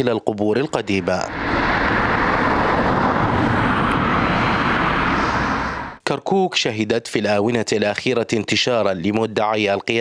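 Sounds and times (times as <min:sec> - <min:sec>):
loud outdoor rushing noise: 0:00.8 - 0:06.0.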